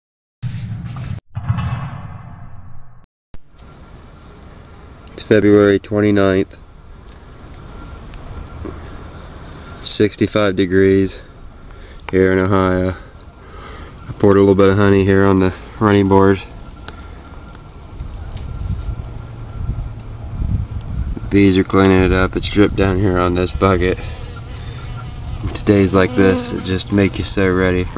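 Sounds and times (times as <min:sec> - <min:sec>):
short hit sound effect: 0:00.4 - 0:03.1
faint steady background noise: 0:03.5 - 0:27.9
wind buffeting microphone: 0:17.7 - 0:24.0.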